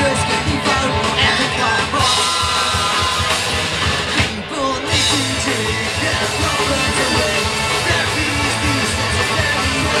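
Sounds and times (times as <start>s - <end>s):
drum kit: 0.0s - 10.0s
electric guitars: 0.0s - 10.0s
rock band playing live: 0.0s - 10.0s.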